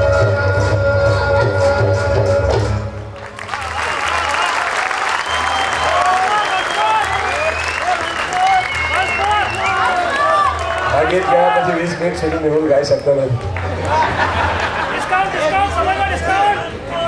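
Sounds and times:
audience applauding: 3.1s - 12.3s, 13.3s - 15.8s
crowd calling out: 3.2s - 17.0s.

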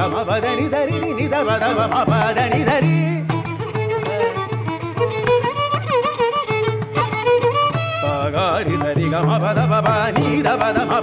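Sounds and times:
man singing classical phrases: 0.0s - 3.3s, 8.1s - 11.0s.

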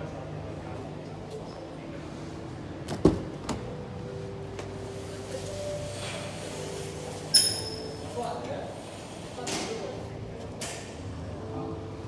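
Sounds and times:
metallic clink: 7.3s - 7.9s.

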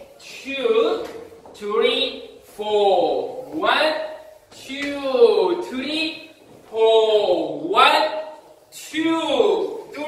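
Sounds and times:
man calling out: 1.6s - 10.0s.

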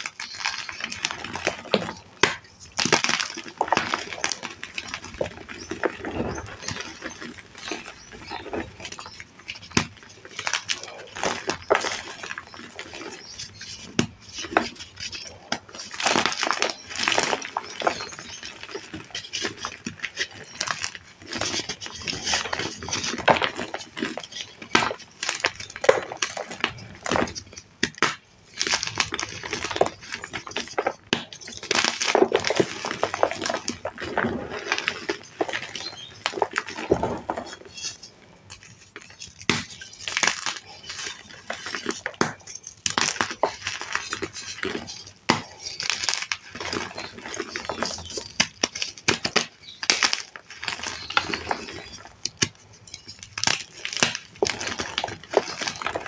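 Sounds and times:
chalk crunching and crumbling: 0.0s - 56.0s.

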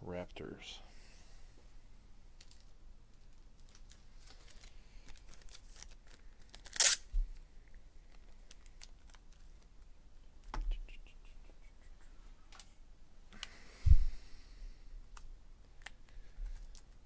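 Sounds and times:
trading cards rustling and clicking: 2.4s - 7.1s
low thump: 13.9s - 14.2s.

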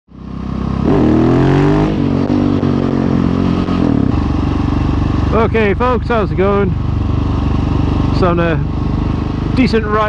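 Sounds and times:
motorcycle engine accelerating: 0.1s - 10.0s.

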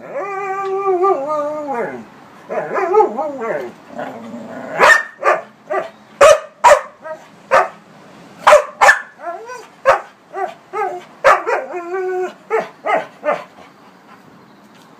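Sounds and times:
dogs howling: 0.0s - 5.9s, 9.2s - 13.5s
dogs barking: 4.7s - 7.8s, 8.4s - 13.7s.

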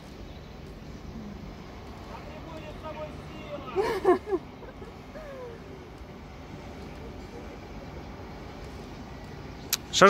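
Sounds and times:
low outdoor rumbling: 0.0s - 10.0s.

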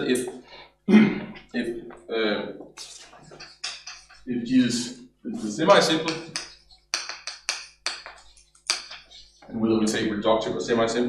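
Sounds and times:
chalk tapping and scraping on blackboard: 2.6s - 4.3s, 5.7s - 9.5s.

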